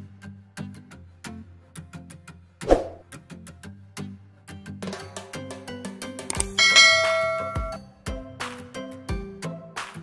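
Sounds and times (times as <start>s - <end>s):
bright bell chime: 6.5s - 7.8s.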